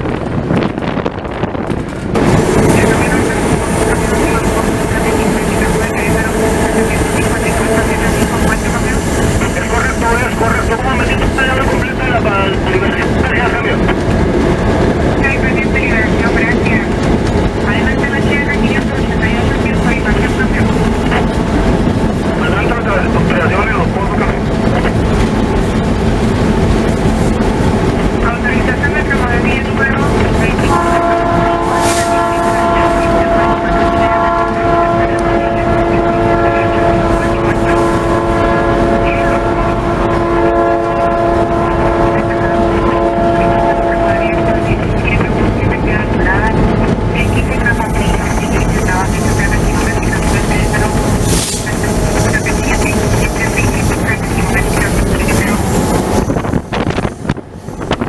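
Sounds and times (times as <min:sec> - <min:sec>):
diesel locomotive running: 0:00.0 - 0:58.0.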